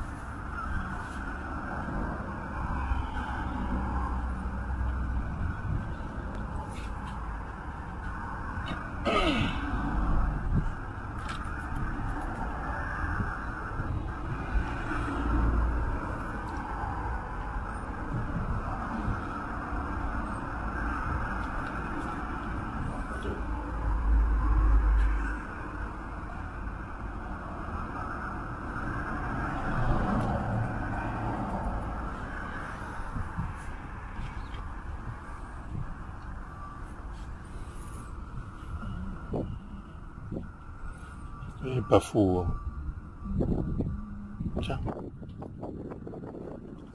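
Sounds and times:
outdoor traffic noise: 0:00.0 - 0:46.9
wind gusts on microphone: 0:00.0 - 0:46.9.

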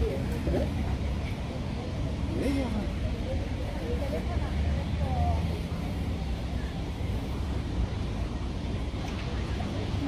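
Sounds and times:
city background rumble: 0:00.0 - 0:10.0.

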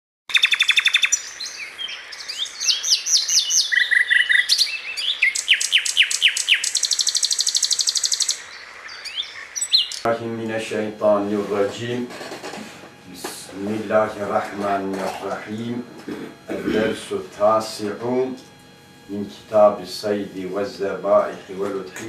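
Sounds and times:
bird trilling and whistling: 0:00.3 - 0:10.1.

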